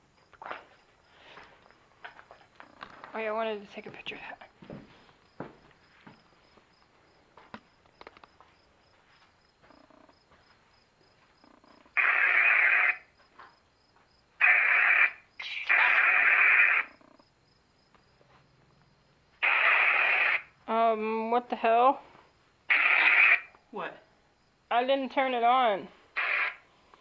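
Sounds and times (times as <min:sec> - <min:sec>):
bursts of radio static: 0:14.4 - 0:16.9, 0:19.4 - 0:20.5, 0:26.2 - 0:26.6.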